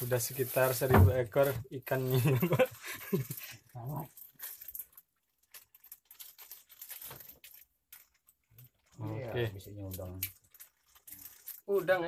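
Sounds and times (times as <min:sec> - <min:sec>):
faint clicks and rustles: 0:00.1 - 0:12.0.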